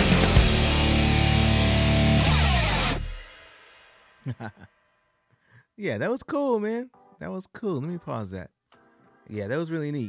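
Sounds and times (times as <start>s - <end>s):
hard rock band music: 0.0s - 4.4s.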